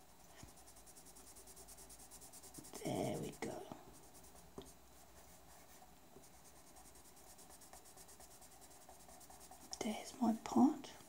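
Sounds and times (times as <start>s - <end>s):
pencil scratching on paper: 0.0s - 10.6s.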